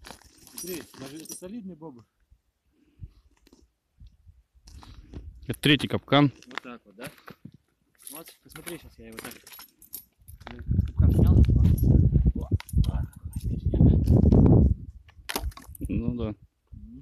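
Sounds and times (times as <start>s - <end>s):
low rumble on microphone: 10.5s - 15.0s.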